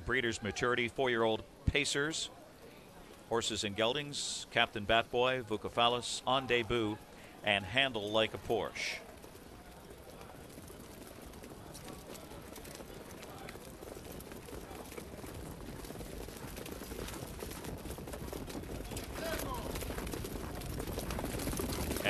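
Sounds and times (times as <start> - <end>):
hoof clicks: 6.3 - 22.0.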